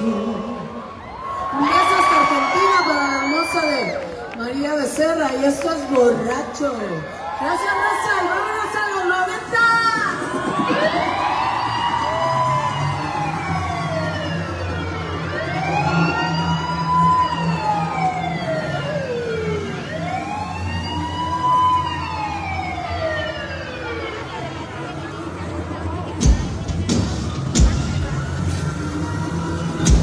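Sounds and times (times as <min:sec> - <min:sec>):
siren-like wail: 0:00.0 - 0:26.3, 0:27.2 - 0:30.0.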